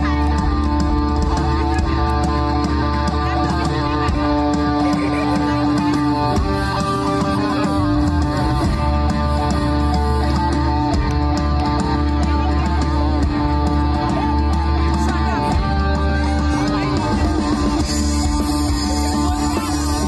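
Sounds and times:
electric guitar: 0:00.0 - 0:20.0
rock band playing: 0:00.0 - 0:20.0.

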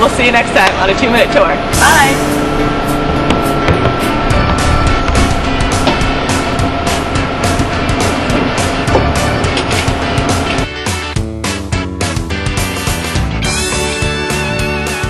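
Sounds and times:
upbeat background music: 0:00.0 - 0:15.0.

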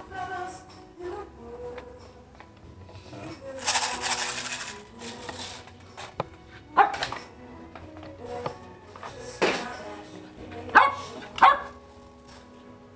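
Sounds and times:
background music: 0:00.0 - 0:12.9
dog barking: 0:06.7 - 0:07.1, 0:10.7 - 0:11.8.

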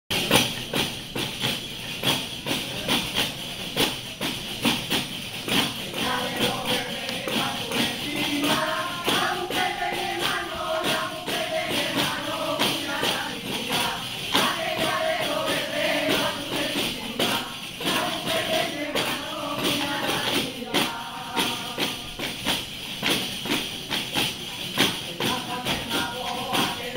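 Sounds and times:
frame drums with jingles: 0:00.1 - 0:26.9
group singing: 0:05.4 - 0:23.6, 0:24.7 - 0:26.9.

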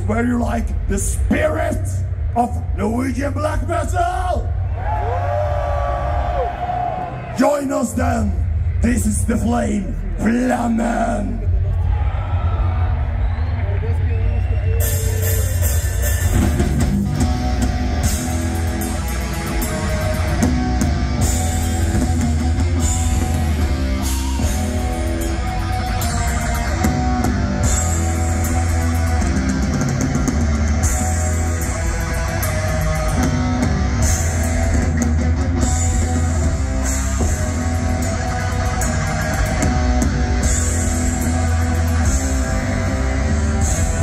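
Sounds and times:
bass guitar: 0:00.0 - 0:44.0
pounding drum kit: 0:14.7 - 0:44.0
distorted electric guitars: 0:14.8 - 0:44.0.

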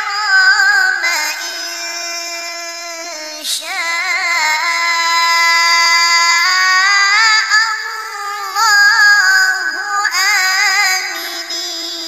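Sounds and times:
high voice chanting recitation: 0:00.0 - 0:12.0.

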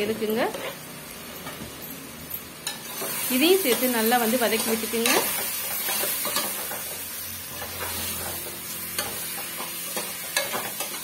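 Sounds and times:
potatoes sizzling in a pot: 0:02.5 - 0:11.0.

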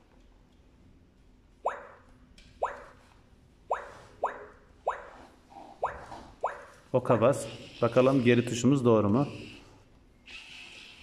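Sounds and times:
electronic bloop dropping in pitch: 0:02.6 - 0:02.9, 0:03.7 - 0:05.2, 0:05.8 - 0:06.7.

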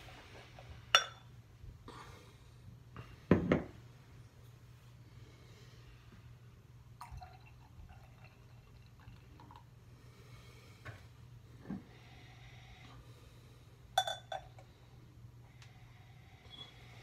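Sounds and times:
glass clinking: 0:00.9 - 0:01.3, 0:14.0 - 0:14.6
beer pouring into glass: 0:07.0 - 0:09.7.

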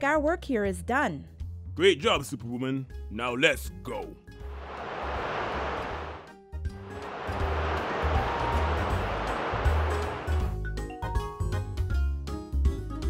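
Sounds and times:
whoosh sound effects: 0:04.5 - 0:10.4.

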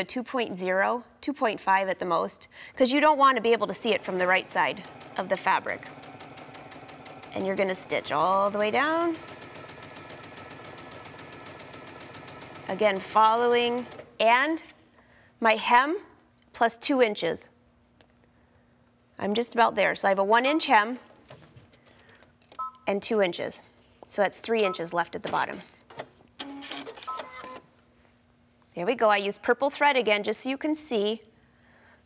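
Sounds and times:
sewing machine stitching: 0:03.5 - 0:14.2.

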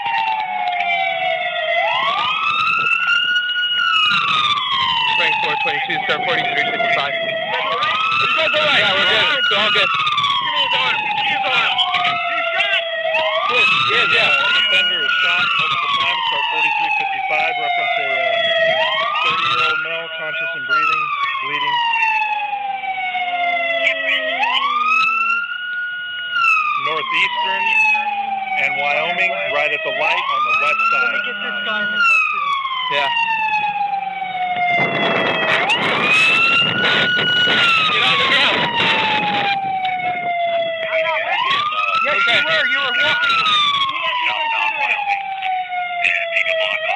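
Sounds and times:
police siren wailing: 0:00.0 - 0:46.9.

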